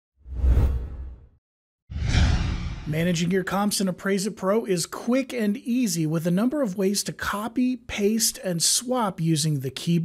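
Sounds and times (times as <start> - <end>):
whoosh with deep rumble: 1.9 - 3.3.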